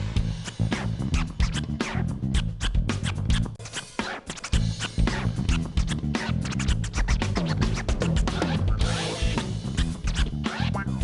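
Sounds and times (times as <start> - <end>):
live band with drums and bass: 0.0 - 11.0
turntable scratching: 0.0 - 11.0.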